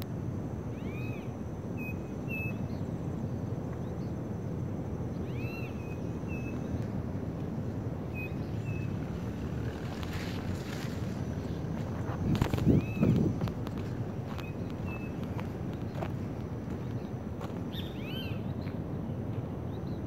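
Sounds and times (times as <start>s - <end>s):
low background rumble: 0.0s - 20.0s
bird calling and chirping: 0.7s - 2.8s, 5.2s - 6.8s, 8.1s - 10.4s, 12.4s - 13.4s, 14.3s - 16.1s, 17.7s - 18.6s.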